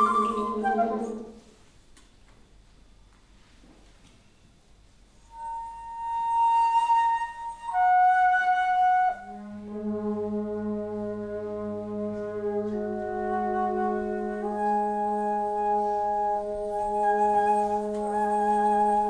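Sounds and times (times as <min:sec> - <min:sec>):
flute holding high note: 0:00.0 - 0:01.3, 0:11.5 - 0:19.0
wind instruments sustained chord: 0:07.3 - 0:19.0.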